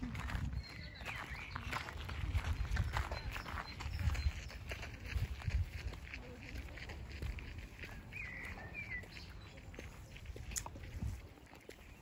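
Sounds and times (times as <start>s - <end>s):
footsteps crunching on gravel: 0.0s - 12.0s.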